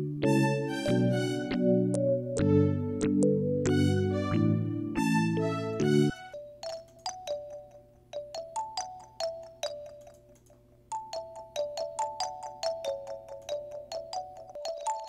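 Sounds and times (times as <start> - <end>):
bell-like synth melody: 0.0 - 7.5.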